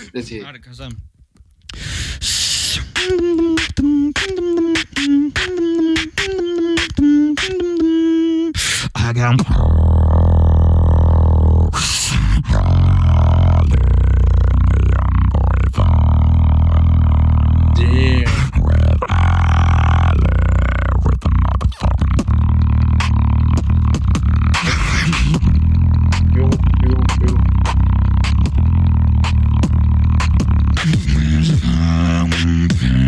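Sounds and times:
beatboxing into a microphone: 1.6s - 33.0s.

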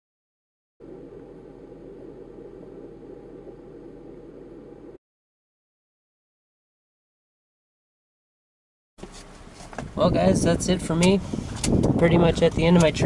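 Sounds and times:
steady low background noise: 0.8s - 5.0s.

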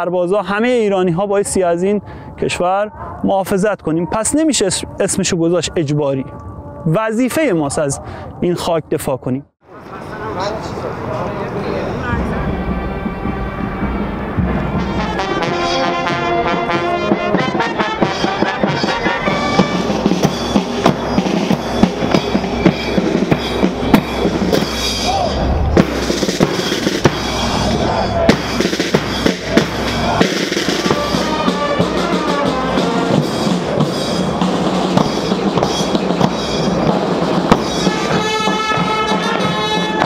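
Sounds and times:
marching band brass: 9.8s - 40.0s
marching drum beat: 12.2s - 25.1s, 25.8s - 40.0s.

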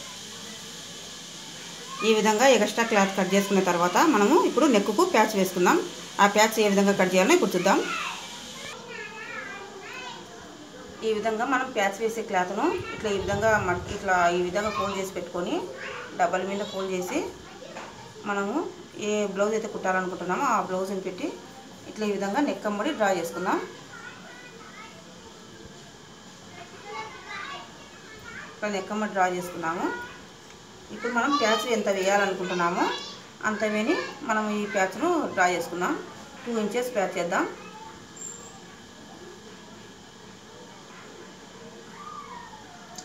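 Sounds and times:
faint high-pitched voices: 0.0s - 43.0s.

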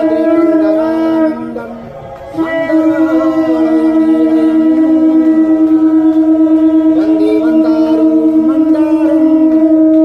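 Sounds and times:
conch shell blown long note: 0.0s - 10.0s.

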